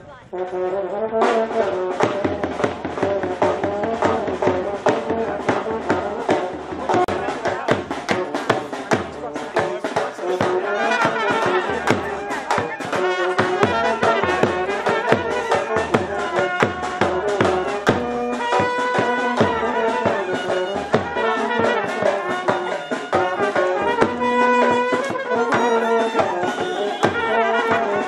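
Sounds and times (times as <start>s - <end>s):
brass band music: 0.0s - 28.0s
steady drum beat: 0.4s - 28.0s.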